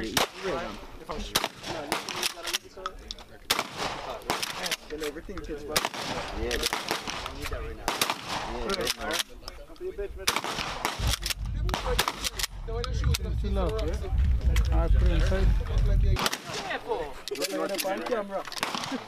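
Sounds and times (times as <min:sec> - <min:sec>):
gunshots: 0:00.0 - 0:02.6, 0:03.5 - 0:04.9, 0:05.7 - 0:09.2, 0:10.2 - 0:13.2, 0:16.2 - 0:16.8, 0:18.6 - 0:19.0.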